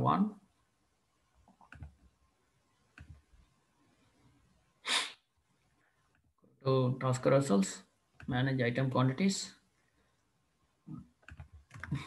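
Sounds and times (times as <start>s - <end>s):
sharp burst of breath: 4.8s - 5.2s.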